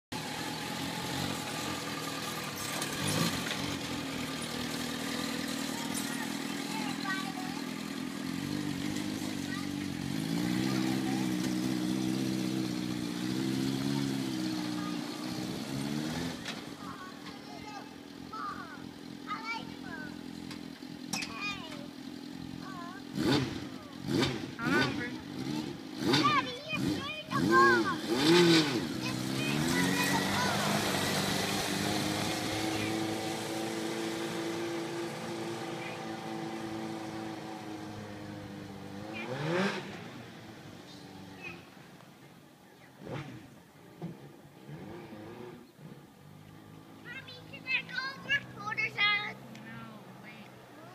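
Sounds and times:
buggy engine revving: 0.0 - 50.9.

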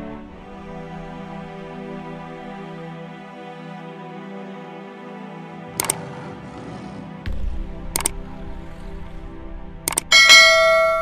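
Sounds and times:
soft background music: 0.0 - 11.0
quick click: 5.8 - 6.1, 8.0 - 8.2, 9.9 - 10.1
bright bell chime: 10.1 - 11.0.

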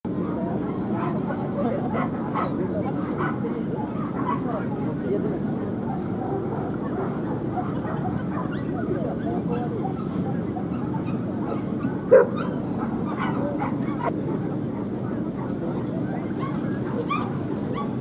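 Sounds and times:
chatter of many people: 0.1 - 18.0
dog barking: 2.0 - 3.4, 4.0 - 4.6, 10.6 - 14.1.

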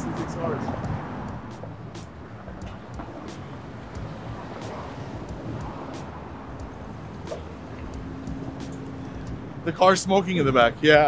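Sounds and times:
cars driving past: 0.0 - 11.0.

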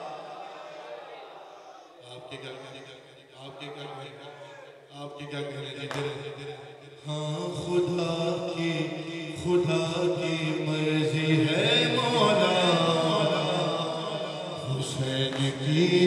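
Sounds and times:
man chanting into a microphone: 1.9 - 16.0.

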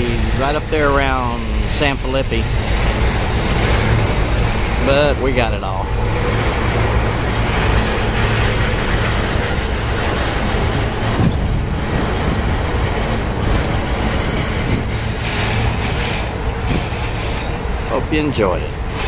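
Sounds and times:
train wheels rumbling on rails: 0.0 - 19.0.

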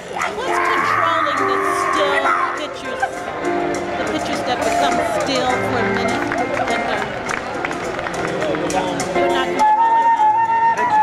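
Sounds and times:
live band playing chords: 0.0 - 11.0.

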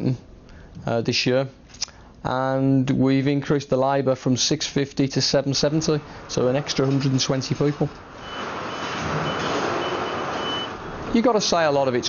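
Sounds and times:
factory machinery noise: 5.2 - 12.0
forklift reversing alarm beeps: 8.1 - 10.8.

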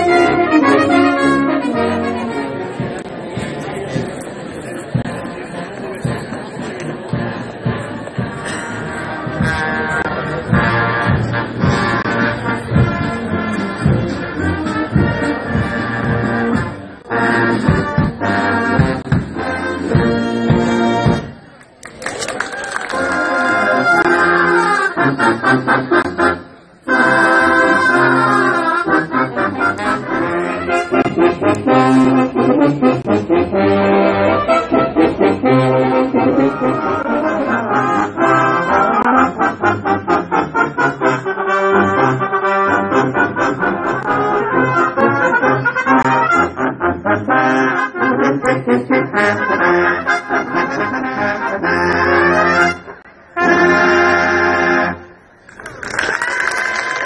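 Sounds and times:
brass band playing a march: 0.0 - 21.4, 22.9 - 55.0
trombones: 0.0 - 21.4, 22.9 - 55.2.

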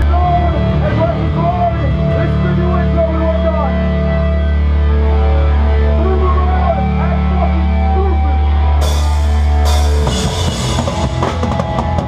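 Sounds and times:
amplified guitar and bass chord: 0.0 - 12.0.

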